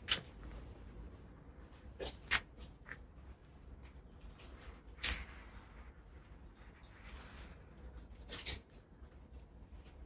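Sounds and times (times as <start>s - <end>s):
tools and wire clicking: 3.8s - 5.4s, 7.9s - 9.5s.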